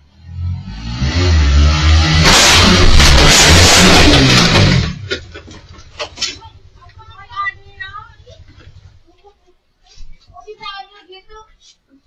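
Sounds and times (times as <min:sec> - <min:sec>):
motorcycle engine revving: 0:00.0 - 0:09.0.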